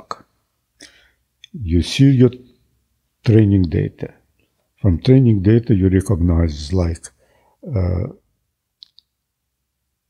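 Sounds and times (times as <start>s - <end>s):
man saying uh: 4.8s - 8.2s.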